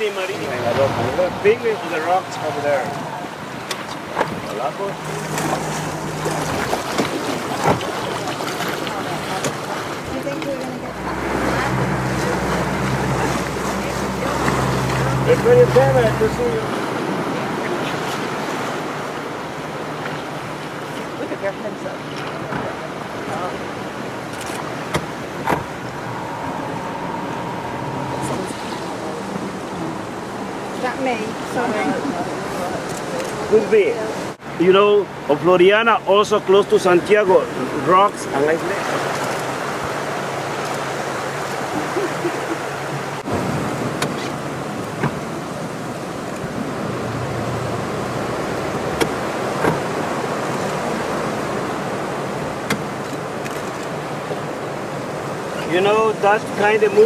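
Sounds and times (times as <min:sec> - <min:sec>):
boat engine running: 0:00.0 - 0:34.3
water noise: 0:00.0 - 0:57.0
wind: 0:00.0 - 0:57.0.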